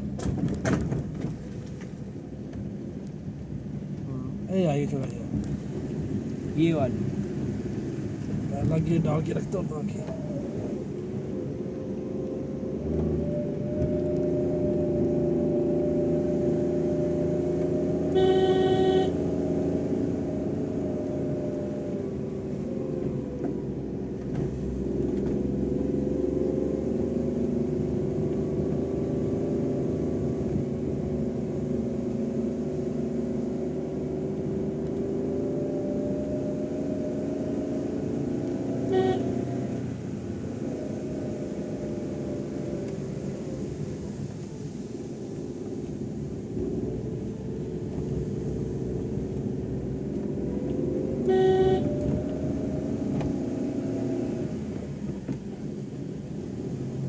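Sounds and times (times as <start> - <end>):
vehicle horn honking: 18.1 - 19.2, 38.9 - 39.5, 51.3 - 51.9.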